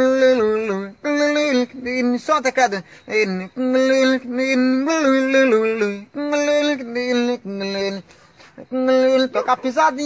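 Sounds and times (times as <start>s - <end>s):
man imitating a guitar vocally: 8.6s - 10.0s.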